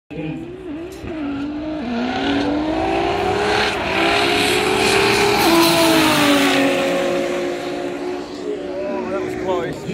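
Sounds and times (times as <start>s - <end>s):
race car engines at full throttle: 0.1s - 9.9s.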